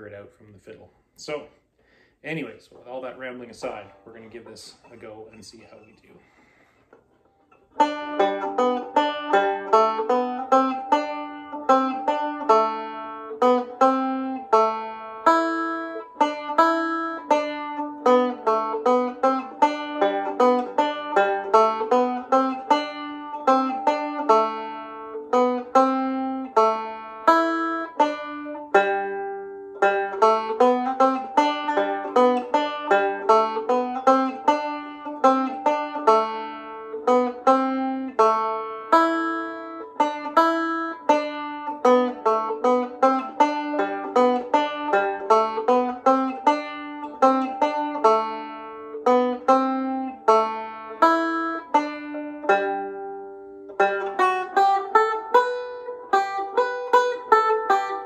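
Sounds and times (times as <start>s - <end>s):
banjo melody: 1.2s - 58.0s.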